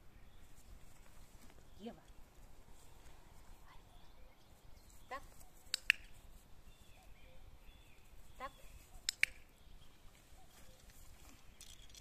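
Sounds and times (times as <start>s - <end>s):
woman speaking: 5.1s - 5.3s, 8.4s - 8.7s
sharp clicks: 5.6s - 6.2s, 9.0s - 9.5s.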